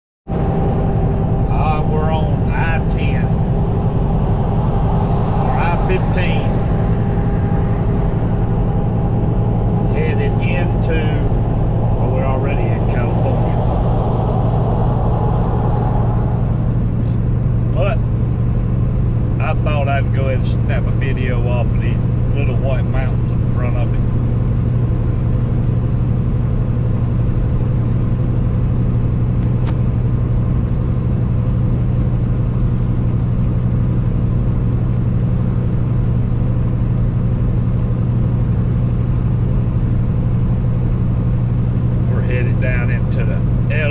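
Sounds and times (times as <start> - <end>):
diesel truck engine droning: 0.3 - 43.9
road noise: 0.3 - 43.9
indistinct voices: 0.6 - 18.0, 19.4 - 24.0, 42.1 - 43.9.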